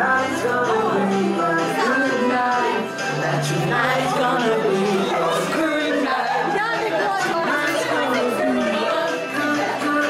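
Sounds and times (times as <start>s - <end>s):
people chattering and exclaiming: 0.0s - 10.0s.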